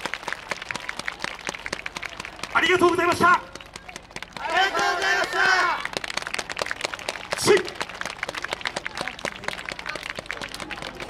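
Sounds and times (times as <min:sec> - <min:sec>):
audience clapping: 0:00.0 - 0:11.0.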